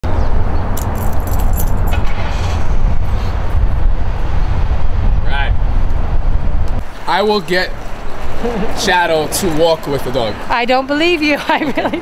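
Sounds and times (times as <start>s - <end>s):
street rumble: 0.0s - 12.0s
metal leash jingling: 0.8s - 2.0s.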